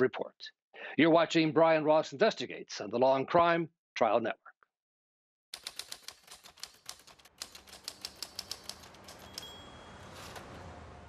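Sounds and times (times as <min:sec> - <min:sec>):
typewriter key clicks: 0:05.6 - 0:09.6.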